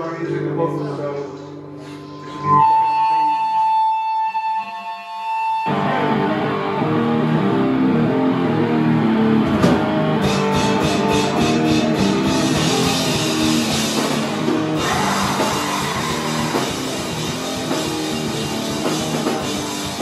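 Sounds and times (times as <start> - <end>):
distorted electric guitar: 1.3 - 20.0
drum kit: 9.4 - 20.0.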